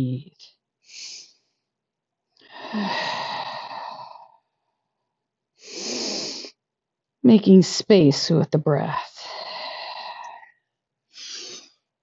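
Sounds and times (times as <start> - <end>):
person breathing deeply: 0.8 - 1.6, 2.4 - 4.6, 9.2 - 11.9.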